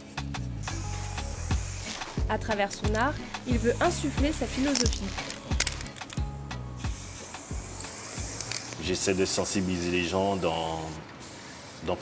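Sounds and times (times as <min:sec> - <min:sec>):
background music: 0:00.0 - 0:09.8
spray paint can hissing: 0:00.0 - 0:12.0.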